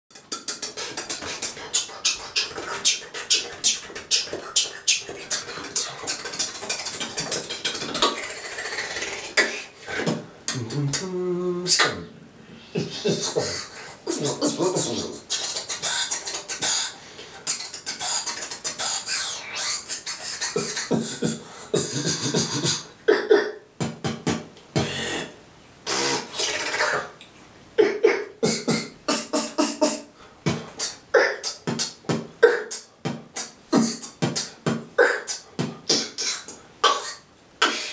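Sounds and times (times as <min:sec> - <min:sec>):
beatboxing mouth clicks: 0:00.1 - 0:12.0, 0:13.0 - 0:37.9.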